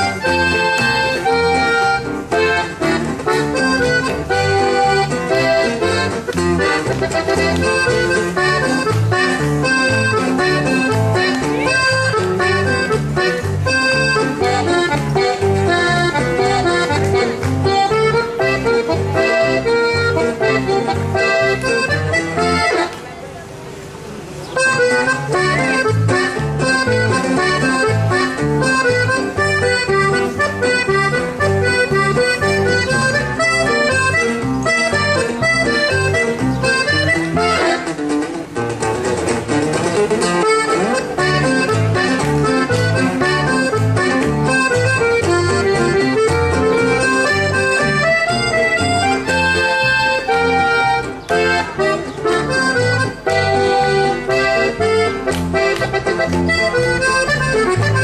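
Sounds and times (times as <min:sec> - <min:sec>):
button accordion melody: 0:00.0 - 0:23.1, 0:24.5 - 0:58.0
strummed string accompaniment: 0:00.0 - 0:23.1, 0:23.8 - 0:58.0.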